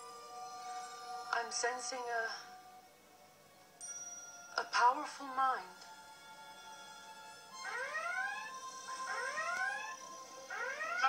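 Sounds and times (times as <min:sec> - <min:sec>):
held music drone: 0:05.8 - 0:11.0.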